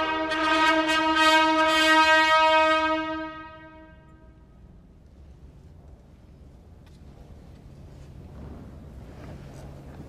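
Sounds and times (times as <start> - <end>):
brass fanfare: 0.0 - 4.2.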